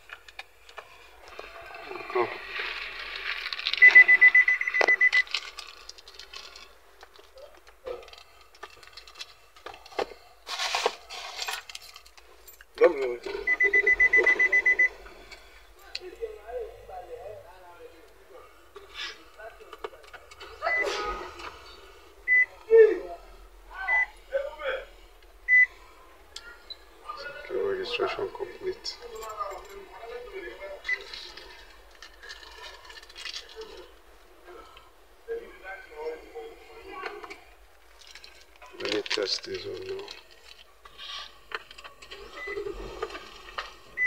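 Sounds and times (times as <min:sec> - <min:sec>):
electronic warning beeps: 0:03.8 - 0:05.3, 0:13.3 - 0:15.0, 0:22.3 - 0:22.6, 0:25.5 - 0:25.7.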